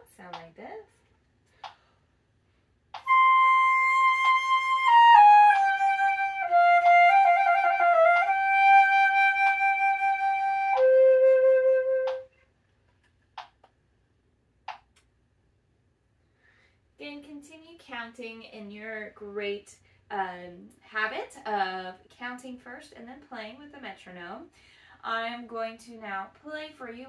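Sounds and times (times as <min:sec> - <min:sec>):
solo flute playing: 0:03.0 - 0:12.3.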